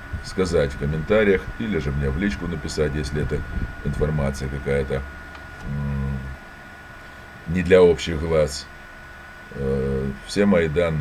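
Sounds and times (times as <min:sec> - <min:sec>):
man saying uh: 0:00.3 - 0:05.0, 0:05.6 - 0:06.4, 0:09.5 - 0:11.0.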